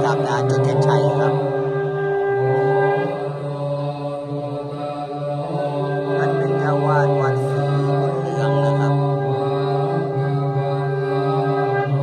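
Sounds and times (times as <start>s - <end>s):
monks chanting in unison: 0.0s - 12.0s.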